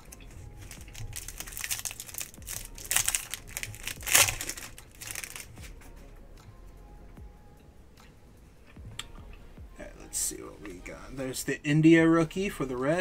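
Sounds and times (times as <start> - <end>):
plastic wrapper crinkling: 0.0 - 5.8.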